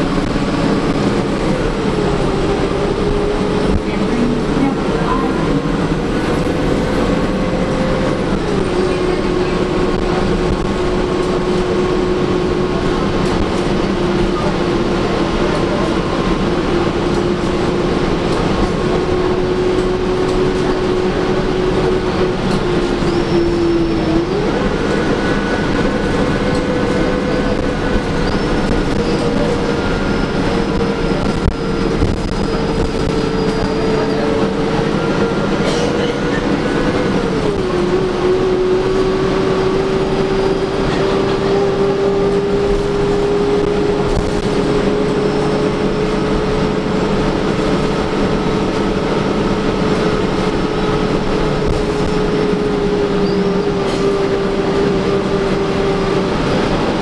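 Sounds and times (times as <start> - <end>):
bus interior rumble: 0.0 - 57.0
drivetrain whine: 0.0 - 57.0.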